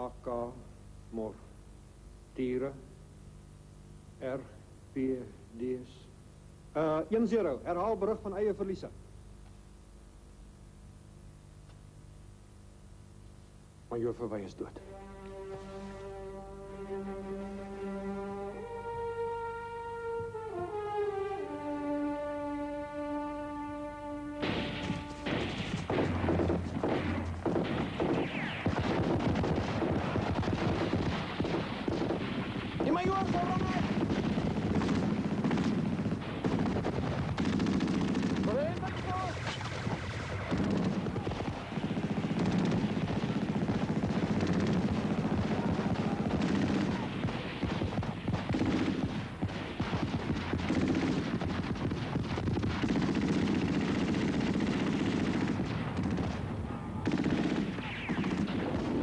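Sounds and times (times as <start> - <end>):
automatic rifle fire: 24.4 - 59.0.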